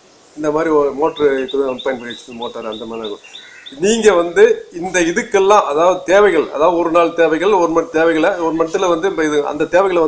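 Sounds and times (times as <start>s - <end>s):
man speaking: 0.4s - 10.0s
bird chirping rapidly: 0.6s - 6.0s, 6.9s - 10.0s.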